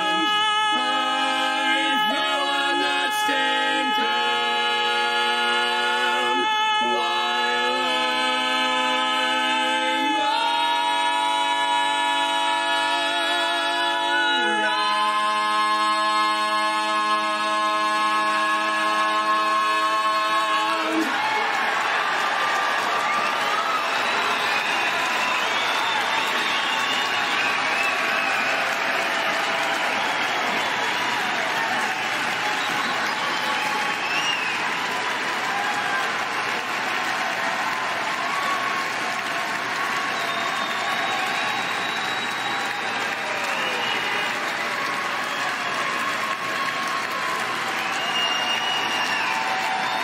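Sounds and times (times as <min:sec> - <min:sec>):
audience applauding: 0:00.0 - 0:50.0.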